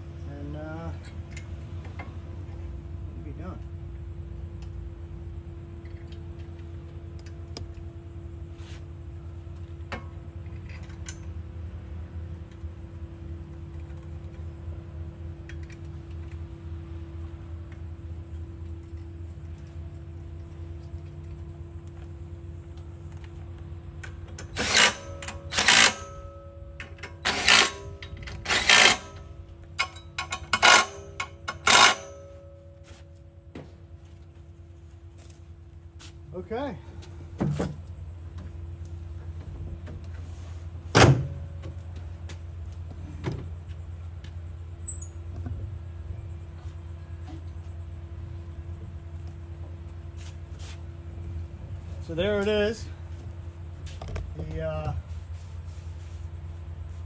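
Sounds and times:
steady low hum: 0.0s - 57.0s
power tool bursts on fasteners: 24.4s - 26.2s, 27.0s - 32.2s.

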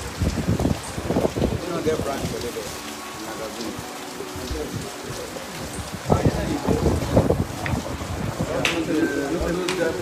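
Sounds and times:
rain falling on concrete: 0.0s - 10.0s.

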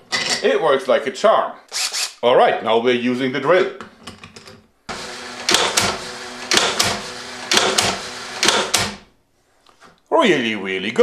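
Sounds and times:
cordless drill running: 1.7s - 2.2s, 4.9s - 9.1s
sharp double snaps: 6.5s - 9.0s.

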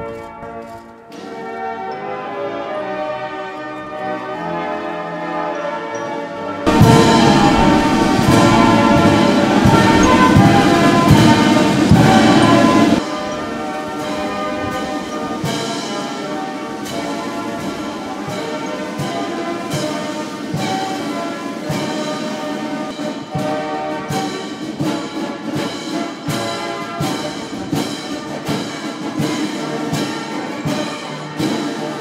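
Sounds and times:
military band brass chords: 0.0s - 32.0s
percussion strikes: 6.6s - 32.0s.

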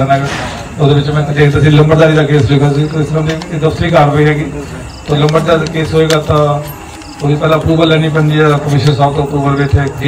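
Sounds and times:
man speaking into a microphone: 0.0s - 10.0s.

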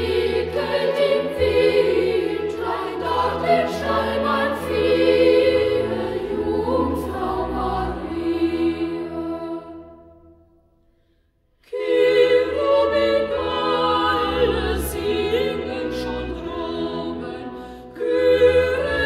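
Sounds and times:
boys' choir singing a carol: 0.0s - 10.2s, 11.7s - 19.0s.

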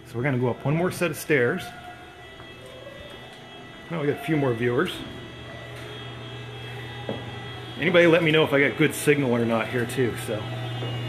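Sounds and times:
room noise: 0.0s - 11.0s
speech: 0.1s - 1.8s, 3.9s - 5.1s, 7.8s - 10.5s.

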